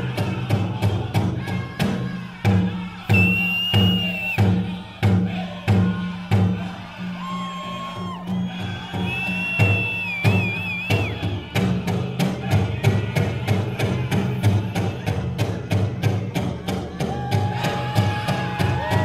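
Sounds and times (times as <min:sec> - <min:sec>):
big drum steady beat: 0:00.0 - 0:07.0, 0:08.5 - 0:19.0
drum group singing: 0:00.0 - 0:19.0
high whistle-like tones: 0:03.1 - 0:04.6, 0:07.1 - 0:11.4.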